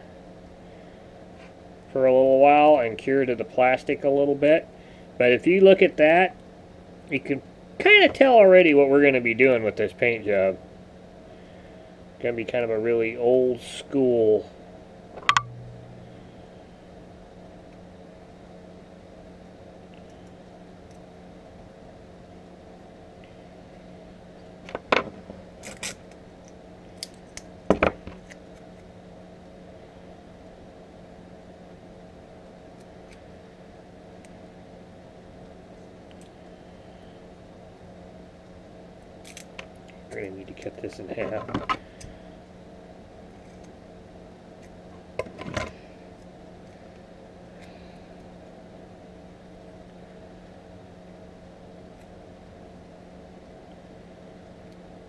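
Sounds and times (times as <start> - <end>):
room hum: 0.0 - 55.0.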